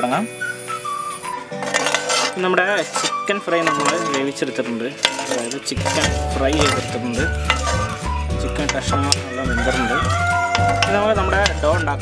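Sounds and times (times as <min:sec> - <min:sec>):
background music: 0:00.0 - 0:12.0
metal spoon scraping ceramic bowl: 0:01.5 - 0:12.0.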